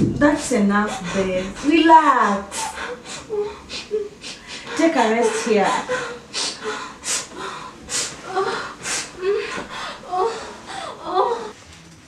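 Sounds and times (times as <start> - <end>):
faint whimpering: 2.5 - 11.6.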